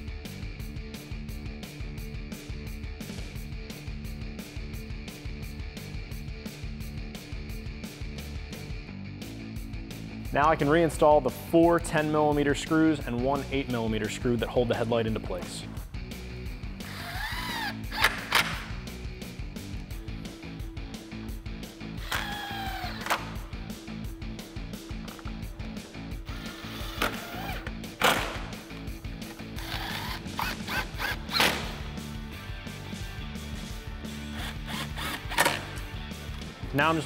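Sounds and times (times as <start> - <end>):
background music: 0.0 - 37.0
impact wrench motor whining: 16.8 - 18.6, 22.0 - 23.4, 26.3 - 28.4, 29.3 - 31.9, 34.2 - 35.8.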